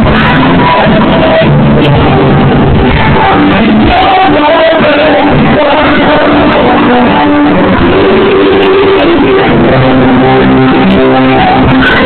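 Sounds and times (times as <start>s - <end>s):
guitar notes: 0.0s - 12.0s
live band playing loudly: 0.0s - 12.0s.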